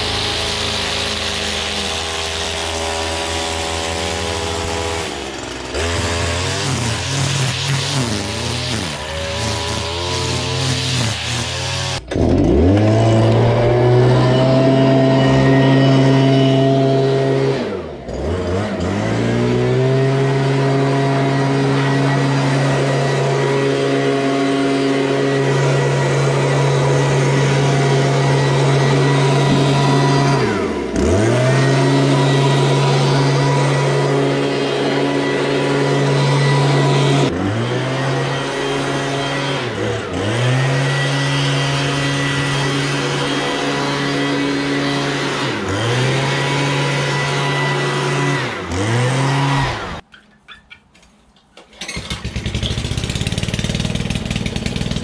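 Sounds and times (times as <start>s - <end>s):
leaf blower running: 0.0s - 50.0s, 51.8s - 55.0s.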